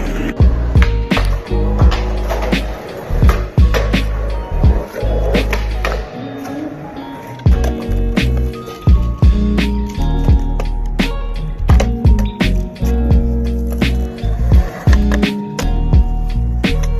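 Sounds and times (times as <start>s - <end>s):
music with bass and percussion: 0.0s - 6.0s, 7.5s - 16.9s
skateboard wheels rolling: 0.0s - 16.9s
skateboard clacks on concrete: 0.8s - 6.6s, 11.7s - 12.6s.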